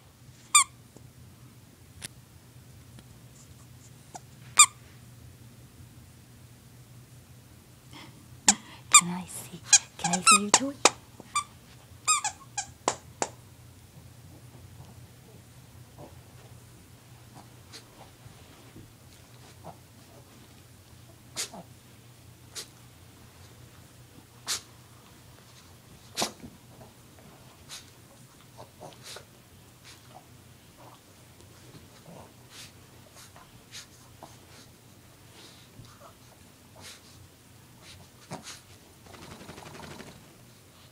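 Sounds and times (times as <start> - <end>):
squeaky toy squeaking: 10.2 - 10.4, 12.1 - 12.7
dog fur rubbing on carpet: 17.6 - 20.7, 37.8 - 38.8.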